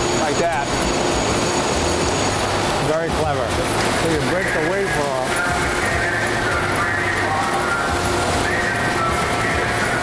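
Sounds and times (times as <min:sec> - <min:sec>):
production-line machinery humming: 0:00.0 - 0:10.0.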